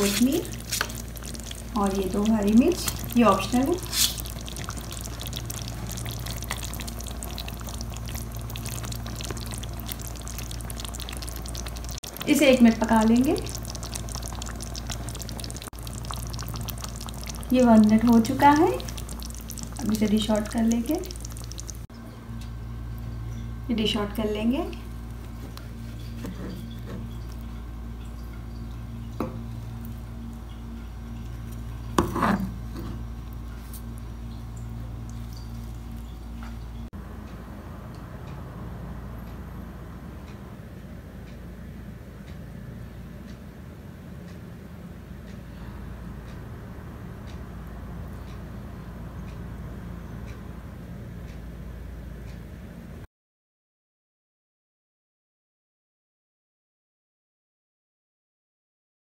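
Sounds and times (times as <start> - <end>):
curry bubbling in a pan: 0.0 - 21.9
steady low hum: 0.0 - 53.1
ladle scraping: 2.8 - 6.8.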